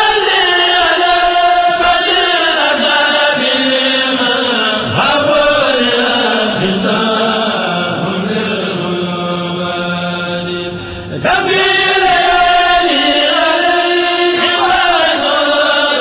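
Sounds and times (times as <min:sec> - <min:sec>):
person chanting religious song: 0:00.0 - 0:16.0.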